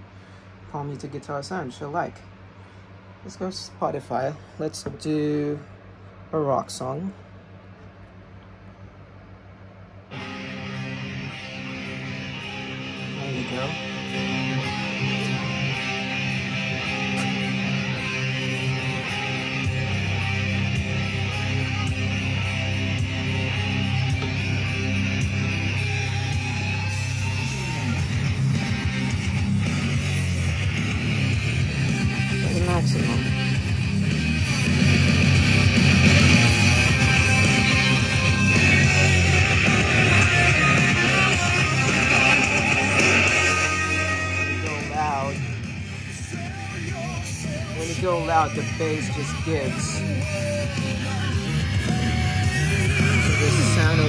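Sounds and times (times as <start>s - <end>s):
rock song on small speaker: 10.1s - 54.0s.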